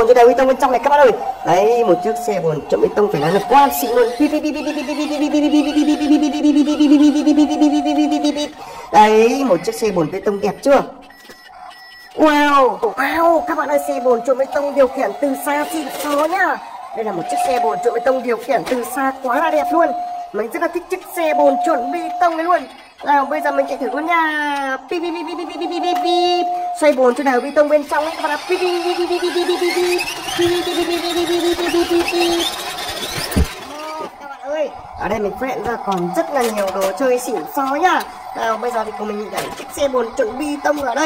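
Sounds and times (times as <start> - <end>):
electronic beeping: 0.0 - 41.0.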